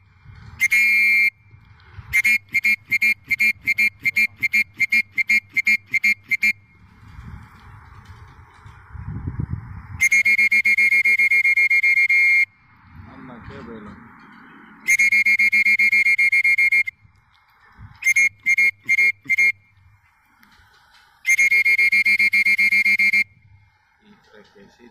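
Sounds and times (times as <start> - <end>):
short beeps: 14.9 - 16.9, 21.3 - 23.4.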